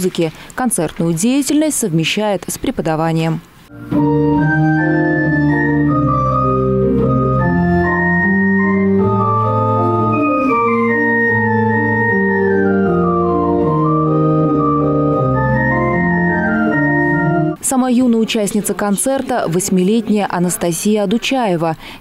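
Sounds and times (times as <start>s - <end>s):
pipe organ playing chords: 3.7s - 17.6s.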